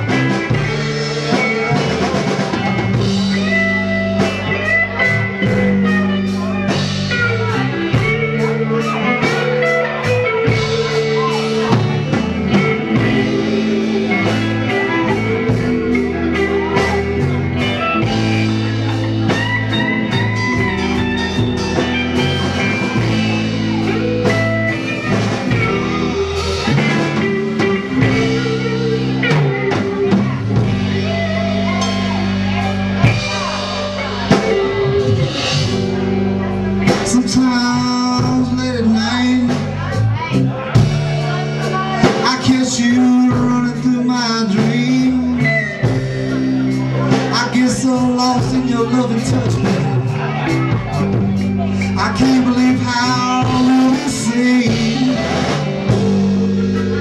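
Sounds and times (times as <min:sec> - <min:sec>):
bass guitar: 0:00.0 - 0:57.0
drum kit steady beat: 0:00.0 - 0:57.0
electric guitar lead: 0:00.0 - 0:57.0.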